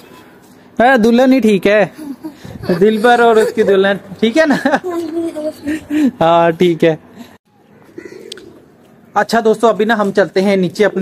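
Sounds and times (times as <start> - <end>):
pigeons cooing quietly: 7.8 - 8.8.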